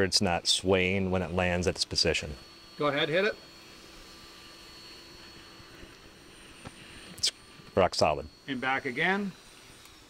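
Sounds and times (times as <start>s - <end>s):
thin electrical hum: 0.0s - 10.0s.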